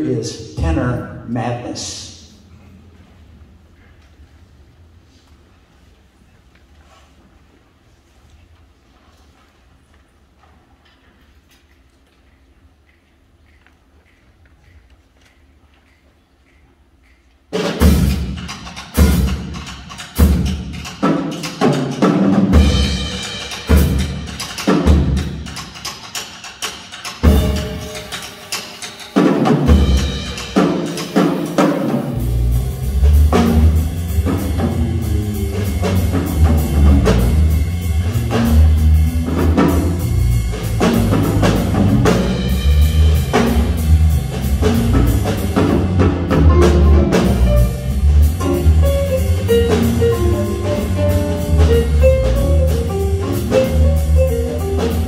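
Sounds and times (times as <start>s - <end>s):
drums: 0.0s - 55.0s
jazz big band playing: 17.6s - 55.0s
bass line: 32.2s - 55.0s.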